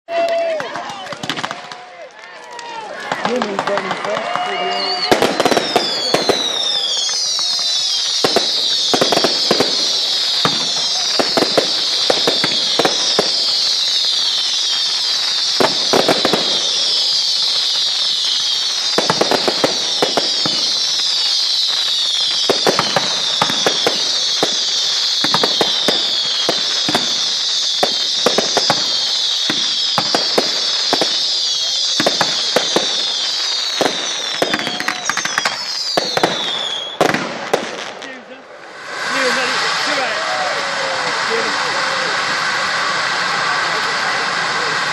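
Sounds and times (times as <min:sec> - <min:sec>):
fireworks crackling and pops: 0:00.1 - 0:44.9
fireworks whistles: 0:03.0 - 0:44.9.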